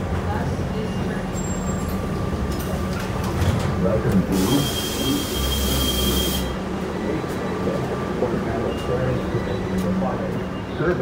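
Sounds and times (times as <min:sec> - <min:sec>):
bus drivetrain and road rumble: 0:00.0 - 0:11.0.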